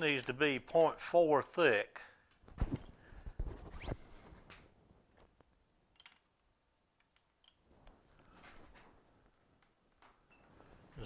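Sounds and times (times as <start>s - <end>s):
short rising squeak: 3.7s - 4.1s
metal parts knocking and clicking: 5.9s - 6.3s.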